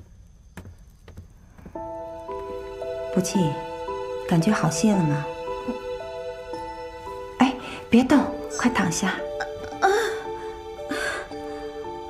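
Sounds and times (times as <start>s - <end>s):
slow soft footsteps: 0.0s - 2.6s
soft music: 1.7s - 12.0s.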